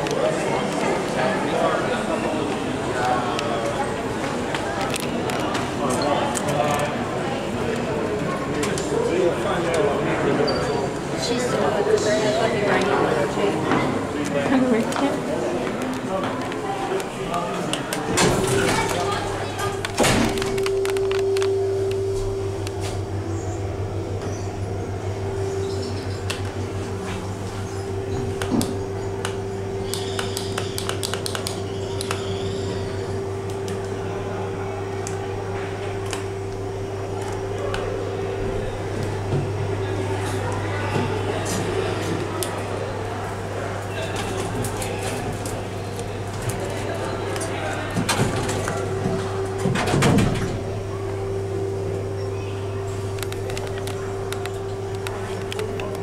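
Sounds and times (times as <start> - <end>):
crowd chatter: 0.0 - 56.0
steady hum: 0.0 - 56.0
lift doors closing with thuds: 17.9 - 21.2, 46.2 - 51.3.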